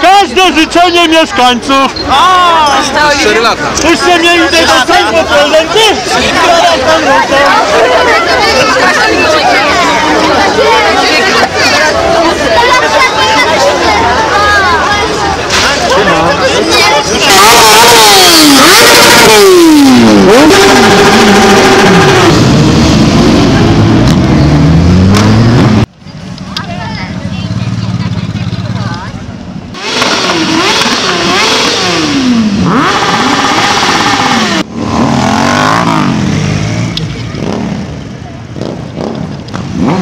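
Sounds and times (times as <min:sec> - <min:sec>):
motorcycle engines revving: 0:02.0 - 0:40.0.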